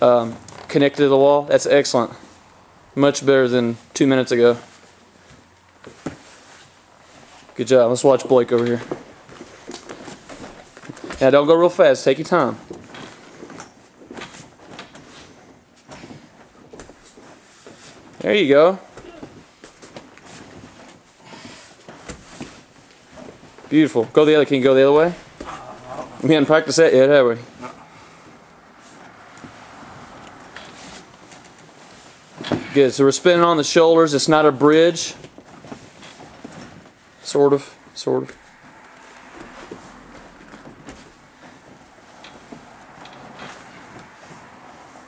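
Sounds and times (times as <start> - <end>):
body rolling on gym mat: 0.0 - 45.0
bare feet against chain-link: 3.5 - 45.0.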